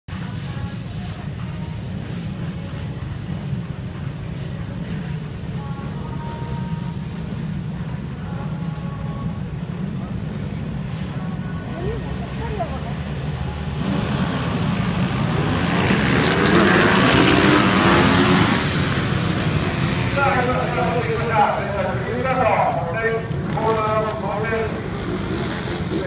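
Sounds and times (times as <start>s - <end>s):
motorcycle engines revving: 11.7s - 26.0s.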